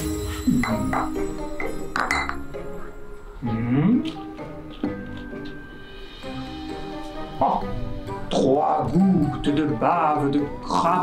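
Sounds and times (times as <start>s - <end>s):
glass clinking: 0.0s - 3.0s
background music: 0.0s - 11.0s.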